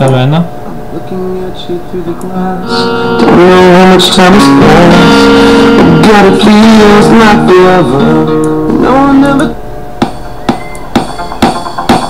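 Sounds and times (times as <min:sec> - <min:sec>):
guitar music through speakers: 0:02.3 - 0:12.0.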